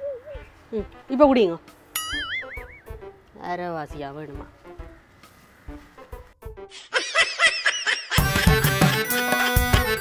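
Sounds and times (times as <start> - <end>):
snickering laugh: 6.8 - 8.4.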